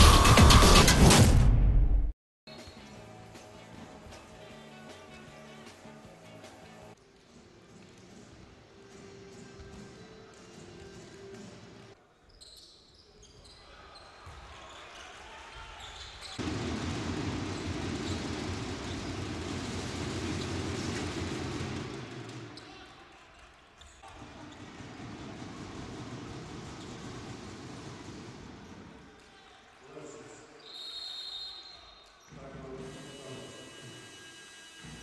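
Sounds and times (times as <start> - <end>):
crowd noise: 13.6 - 30.9
basketball bouncing on hardwood court: 16.3 - 22.7, 24.0 - 28.6.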